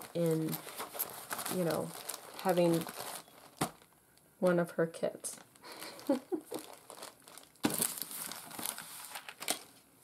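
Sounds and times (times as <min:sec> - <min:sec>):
papers rustling: 0:00.0 - 0:04.0, 0:05.6 - 0:09.8
plastic bag crinkling: 0:00.0 - 0:04.0, 0:05.4 - 0:09.8.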